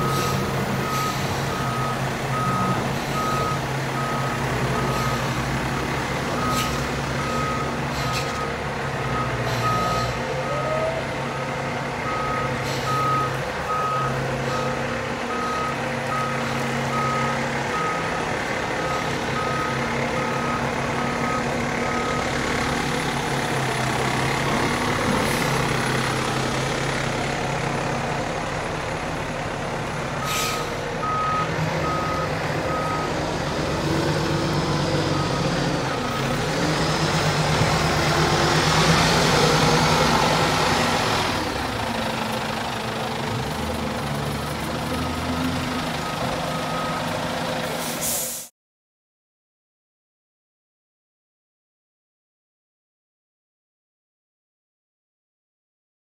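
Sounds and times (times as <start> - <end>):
truck backup alarm beeping: 0.0 - 23.0, 30.2 - 42.9, 43.5 - 48.4
truck engine running: 0.0 - 47.9.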